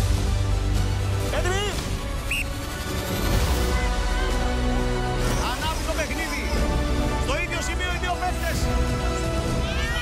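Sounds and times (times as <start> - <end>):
music: 0.0 - 10.0.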